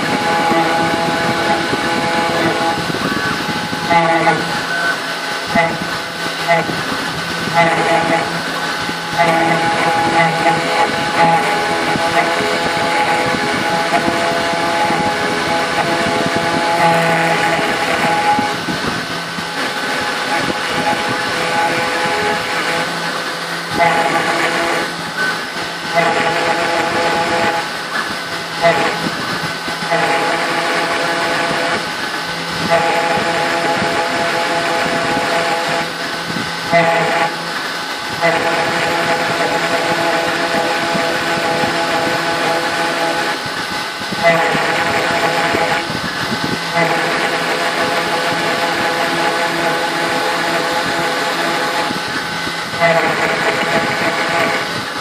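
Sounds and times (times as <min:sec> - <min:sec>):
router spindle whine: 0:00.0 - 0:55.0.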